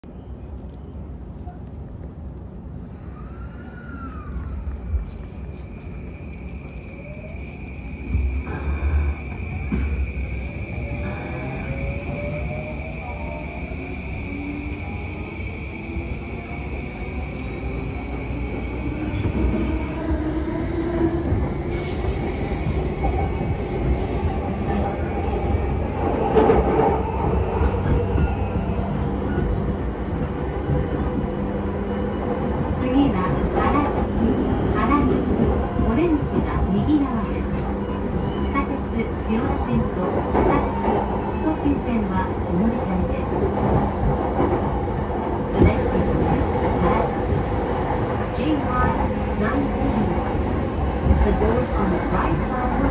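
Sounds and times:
train wheels rumbling on rails: 0:03.6 - 0:52.9.

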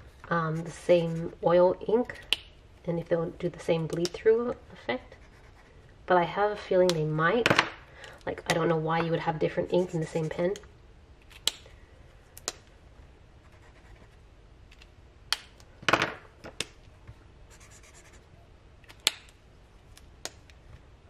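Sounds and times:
marker scratching on paper: 0:00.3 - 0:01.5, 0:05.1 - 0:05.7, 0:09.4 - 0:10.6, 0:13.4 - 0:14.2, 0:17.5 - 0:18.3.

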